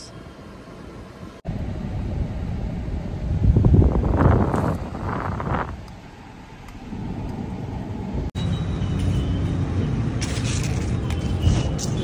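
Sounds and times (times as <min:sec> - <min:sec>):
car cabin rumble: 0:01.5 - 0:06.1
wind on microphone: 0:03.3 - 0:05.8.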